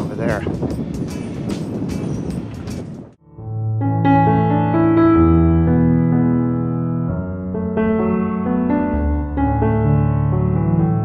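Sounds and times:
wind on microphone: 0:00.0 - 0:03.2.

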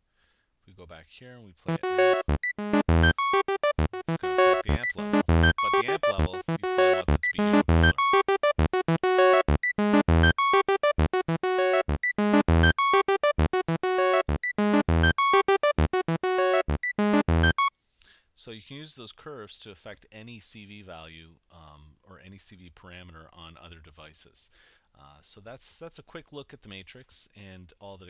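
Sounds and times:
fast sequenced synthesizer line: 0:01.7 - 0:17.7.

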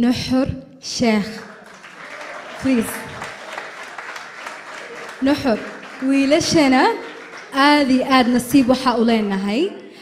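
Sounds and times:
audience applauding: 0:01.3 - 0:09.4.

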